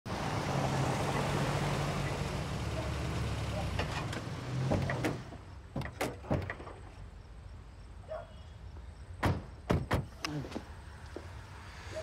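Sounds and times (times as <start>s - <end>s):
car engine humming: 0.1s - 6.0s
car door clicks and knocks: 9.2s - 10.1s.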